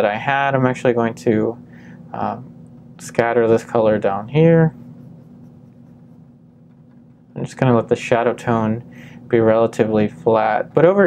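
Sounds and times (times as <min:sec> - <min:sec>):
steady low hum: 0:00.0 - 0:11.0
paintbrush brushing on canvas: 0:04.7 - 0:07.5.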